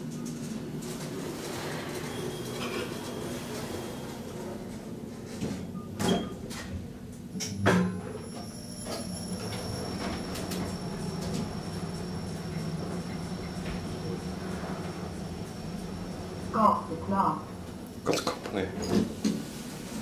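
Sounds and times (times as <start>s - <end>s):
elevator hum and whine: 0.0s - 20.0s
elevator doors clunking: 0.8s - 17.9s.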